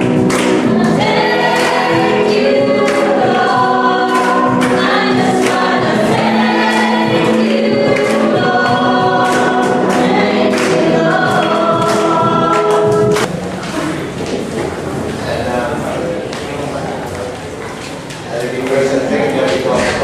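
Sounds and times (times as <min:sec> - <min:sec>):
congregation singing: 0:00.0 - 0:13.3.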